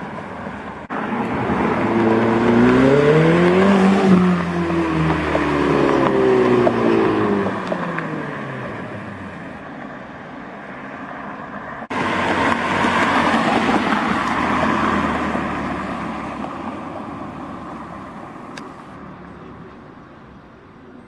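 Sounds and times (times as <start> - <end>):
car engine and tyre noise: 0.0 - 21.0
car engine driving away: 0.9 - 9.6.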